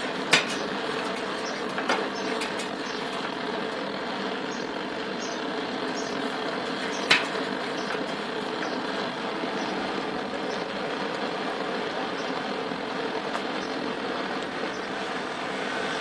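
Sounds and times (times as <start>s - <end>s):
blowtorch flame hissing: 0.0s - 16.0s.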